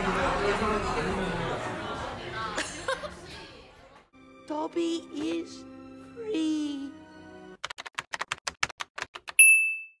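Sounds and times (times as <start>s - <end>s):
typewriter bell ding: 9.4s - 10.0s.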